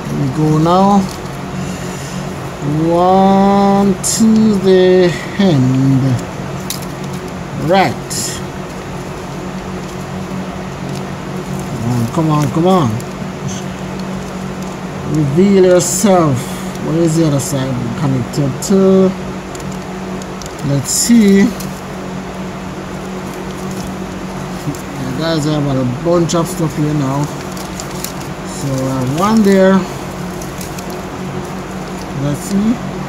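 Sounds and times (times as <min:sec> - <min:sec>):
foil crinkling: 0:00.0 - 0:33.0
steady hiss: 0:00.0 - 0:33.0
steady low hum: 0:00.0 - 0:33.0.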